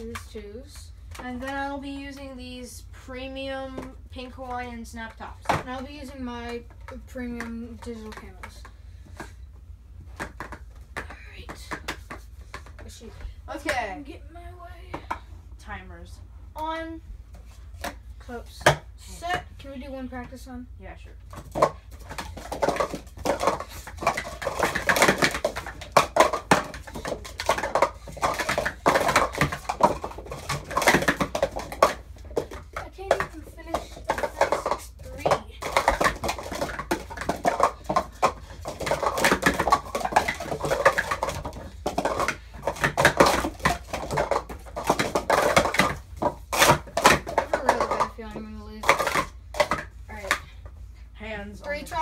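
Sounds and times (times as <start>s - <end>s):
plastic cups clacking: 0.0s - 9.4s, 10.1s - 14.1s, 14.9s - 15.3s, 16.6s - 20.4s, 21.3s - 50.8s, 51.6s - 52.0s.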